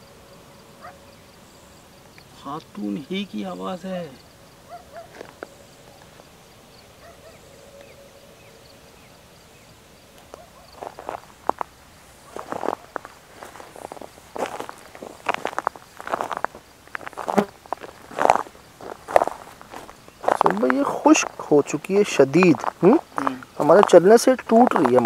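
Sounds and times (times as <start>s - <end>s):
footsteps crunching on dry mud: 4.9s - 6.3s, 10.2s - 25.0s.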